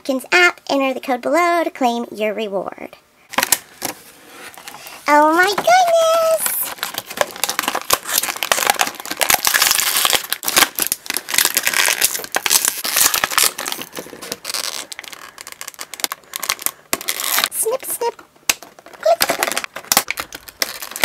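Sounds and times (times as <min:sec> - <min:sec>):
plastic packaging crinkling: 0:03.3 - 0:21.0.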